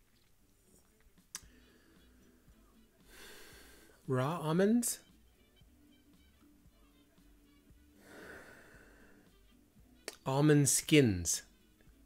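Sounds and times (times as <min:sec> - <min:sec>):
faint background music: 0:00.0 - 0:12.0
person breathing softly: 0:01.4 - 0:02.4, 0:03.0 - 0:04.1, 0:08.0 - 0:09.4.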